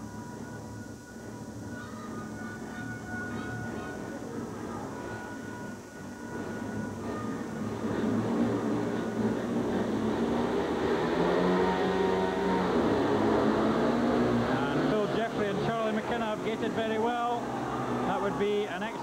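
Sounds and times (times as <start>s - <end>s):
motorcycle engines revving: 7.7s - 18.3s.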